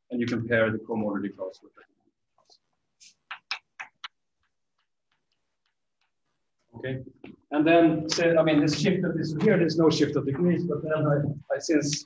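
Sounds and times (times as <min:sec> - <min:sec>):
chalk tapping on blackboard: 0:03.0 - 0:06.5.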